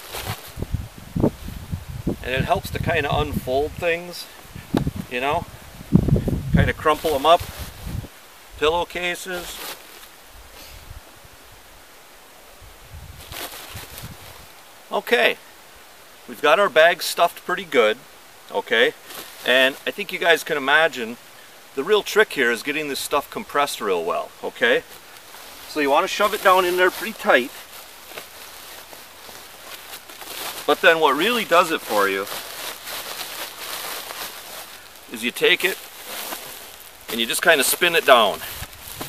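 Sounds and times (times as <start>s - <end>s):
cloth rustling against plastic sack: 0.0s - 10.7s, 12.9s - 14.8s, 18.7s - 39.0s.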